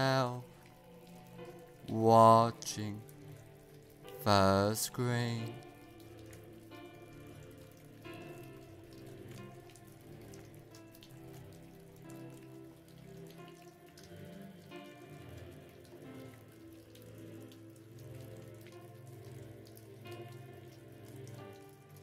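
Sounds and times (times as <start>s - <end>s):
rain patter: 0.0s - 22.0s
soft ambient music: 0.0s - 22.0s.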